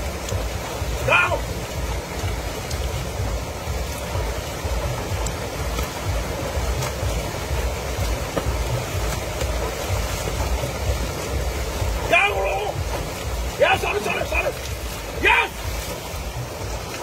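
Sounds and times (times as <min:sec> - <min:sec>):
river flowing over rocks: 0:00.0 - 0:17.0
water splashing by hand: 0:00.0 - 0:17.0.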